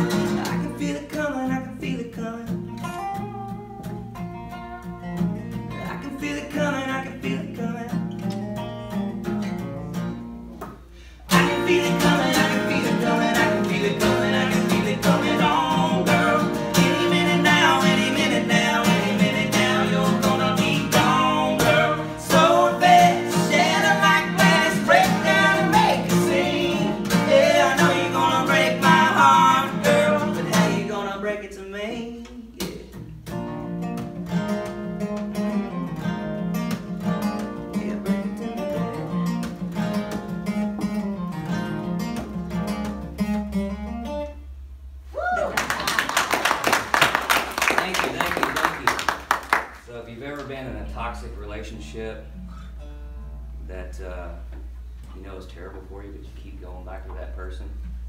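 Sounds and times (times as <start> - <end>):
acoustic and resonator guitars: 0.0 - 58.0
person singing: 11.3 - 32.9.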